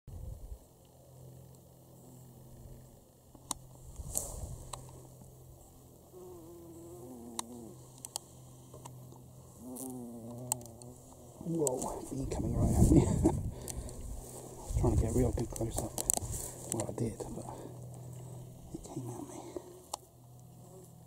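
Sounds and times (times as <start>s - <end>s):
bumblebee buzzing: 1.9s - 12.1s, 16.0s - 21.0s.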